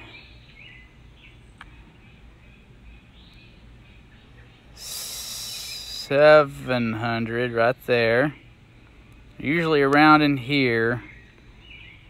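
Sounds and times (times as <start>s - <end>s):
soft bird chirps: 0.0s - 12.0s
high insect buzz: 4.7s - 7.7s.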